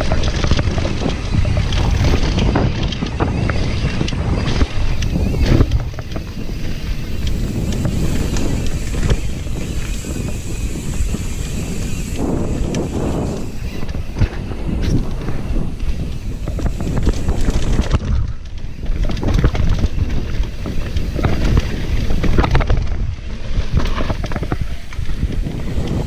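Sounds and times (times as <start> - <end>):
bike jolt: 0.0 - 26.0
bike rattles and knocks: 0.0 - 26.0
mountain bike rumble on dirt: 0.0 - 26.0
wind buffeting microphone: 0.0 - 26.0.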